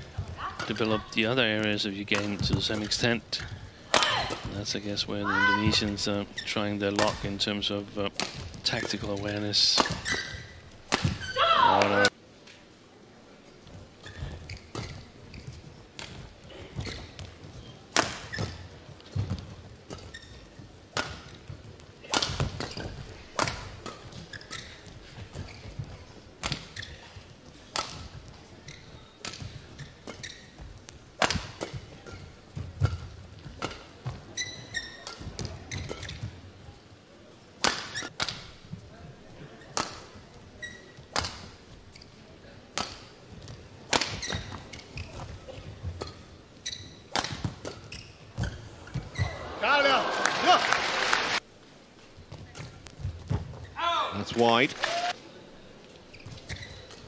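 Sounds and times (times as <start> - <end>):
shoe squeaks on court: 9.8 - 12.1, 14.0 - 15.8, 16.5 - 19.3, 19.9 - 20.6, 22.6 - 23.0, 23.8 - 27.2, 27.9 - 30.7, 31.6 - 36.4, 37.8 - 38.2, 40.6 - 41.3, 44.0 - 49.4, 56.1 - 57.0
rackets striking shuttlecock: 10.9 - 12.1, 22.0 - 24.6, 31.2 - 32.2, 47.1 - 48.5
crowd cheering: 49.2 - 51.4, 54.0 - 55.2.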